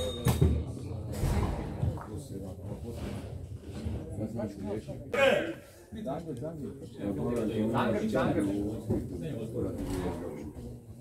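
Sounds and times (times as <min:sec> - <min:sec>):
men's voices talking: 0:04.2 - 0:10.8.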